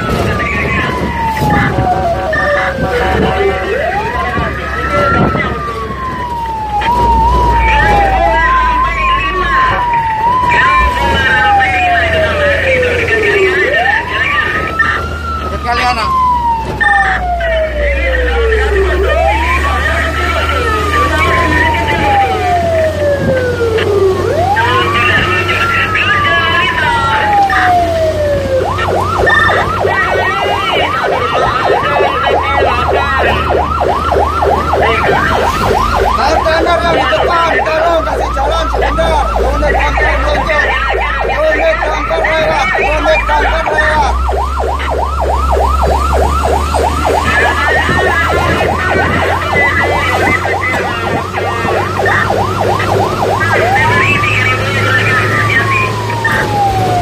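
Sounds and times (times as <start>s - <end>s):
fire truck siren wailing and yelping: 0.0s - 57.0s
truck engine running: 0.0s - 57.0s.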